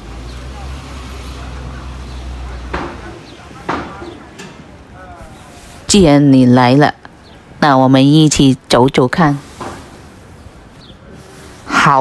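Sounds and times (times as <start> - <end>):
faint voices of passers-by: 0.0 - 12.0
traffic engine rumble: 0.0 - 12.0.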